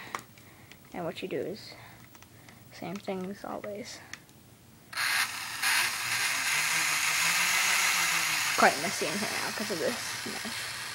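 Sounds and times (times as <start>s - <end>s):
electric flywheel motors whirring: 4.9s - 10.9s.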